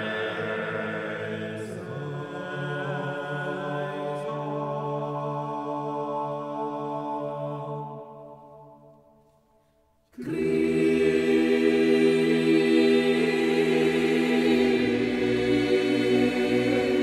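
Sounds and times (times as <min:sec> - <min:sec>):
male voices singing choral music: 0:00.0 - 0:08.8, 0:10.2 - 0:17.0.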